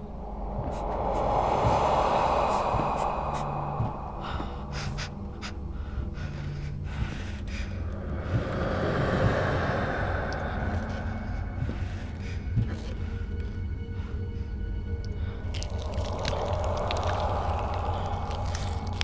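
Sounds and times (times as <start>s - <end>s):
breathy swells: 0.0s - 19.0s
low rumbling drone: 0.0s - 19.0s.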